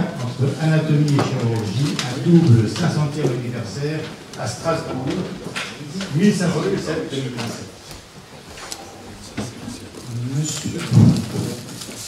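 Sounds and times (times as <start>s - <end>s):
microphone handling rumble: 10.7s - 11.8s.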